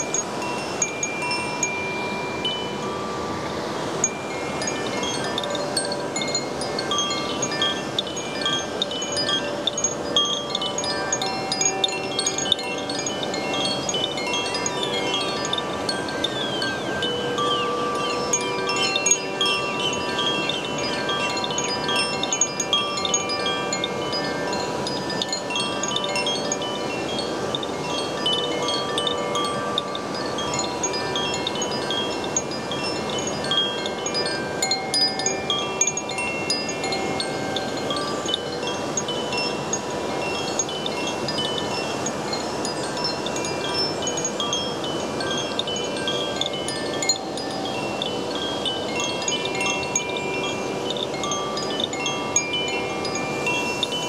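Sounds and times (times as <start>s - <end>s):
wind chime ringing: 0.0s - 54.0s.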